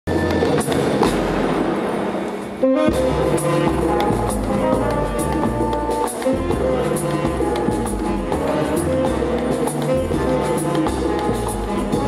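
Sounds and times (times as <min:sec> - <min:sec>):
ensemble music with held notes: 0:00.1 - 0:12.0
low bass: 0:02.9 - 0:12.0.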